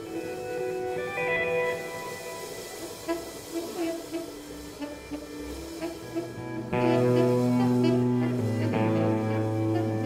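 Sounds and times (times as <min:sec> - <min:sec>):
free jazz notes: 0:00.0 - 0:10.0.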